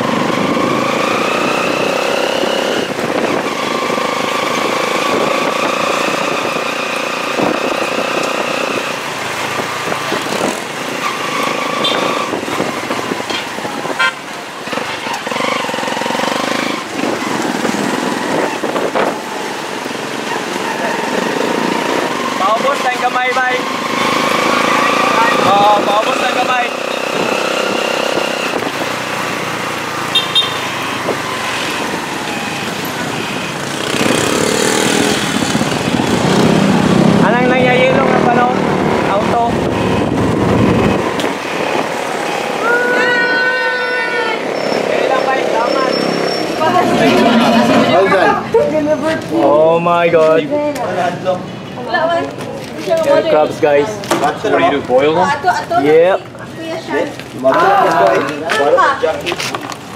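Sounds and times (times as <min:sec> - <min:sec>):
motorcycle engines running: 0:00.0 - 0:59.9
voices: 0:20.2 - 0:27.9, 0:35.7 - 0:40.0, 0:41.0 - 0:59.8.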